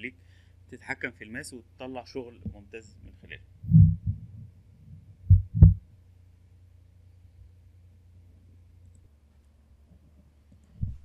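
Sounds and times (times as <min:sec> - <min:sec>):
dull low thumps: 0:02.4 - 0:05.9, 0:10.8 - 0:11.0.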